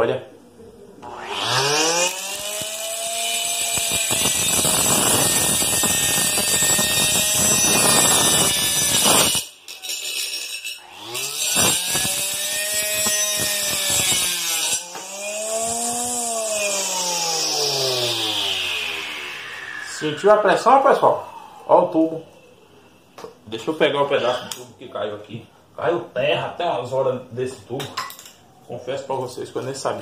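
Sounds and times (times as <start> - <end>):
motor whine: 1.0 - 3.1, 15.1 - 21.7
saw grinding through plastic pipe: 1.1 - 9.5.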